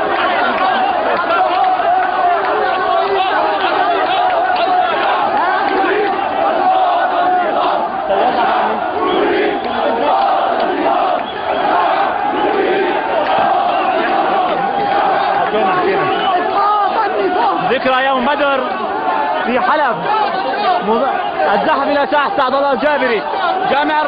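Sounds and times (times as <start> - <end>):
crowd of men shouting: 0.0 - 24.0.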